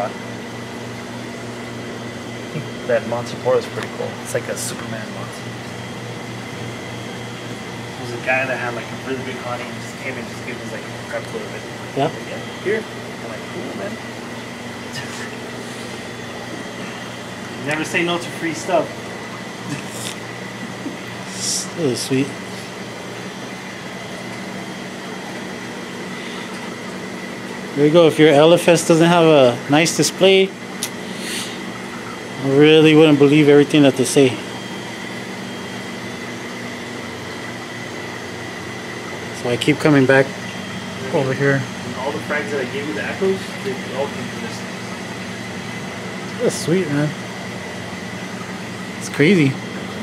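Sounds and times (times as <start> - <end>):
equipment hum and hiss: 0.0 - 50.0.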